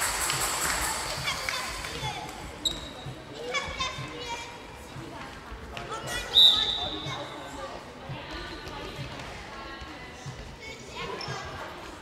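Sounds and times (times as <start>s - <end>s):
voices echoing in hall: 0.0s - 12.0s
referee's whistle blast: 6.4s - 7.0s.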